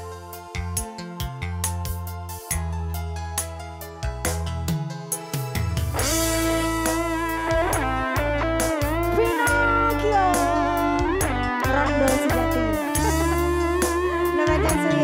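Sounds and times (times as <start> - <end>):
electric guitar lead melody: 4.7 - 15.0
bass line: 5.6 - 15.0.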